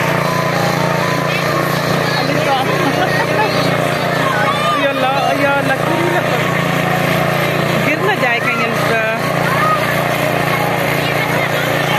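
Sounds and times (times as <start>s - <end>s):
children shouting and squealing: 0.0s - 7.4s, 8.2s - 11.9s
low motor hum: 0.0s - 11.9s.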